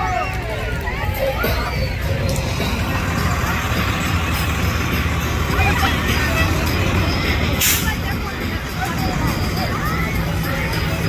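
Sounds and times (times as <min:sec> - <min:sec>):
diesel engine rumbling: 0:00.0 - 0:11.0
people's voices: 0:00.0 - 0:11.0.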